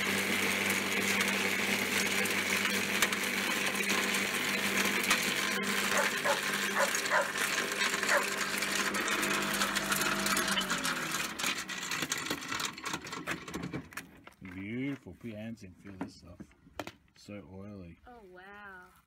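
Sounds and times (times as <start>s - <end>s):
garden shredder motor humming: 0.0s - 14.6s.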